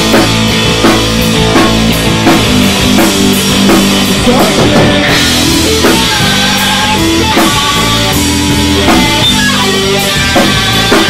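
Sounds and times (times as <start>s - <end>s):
instrumental rock music: 0.0s - 11.0s.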